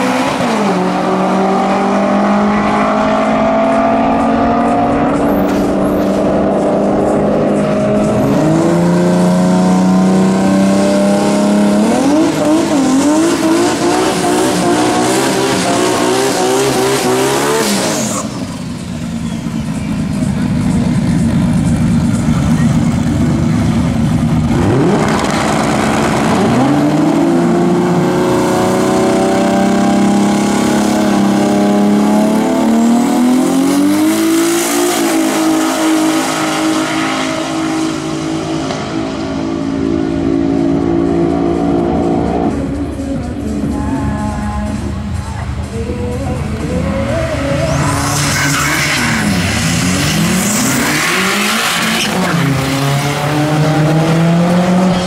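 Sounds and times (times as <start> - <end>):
drag car engines revving: 0.0 - 55.0.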